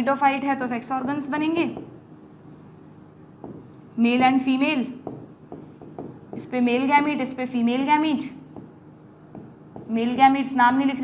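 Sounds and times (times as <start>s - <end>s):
pen writing on a board: 1.0s - 3.9s, 5.0s - 6.5s, 8.6s - 10.0s.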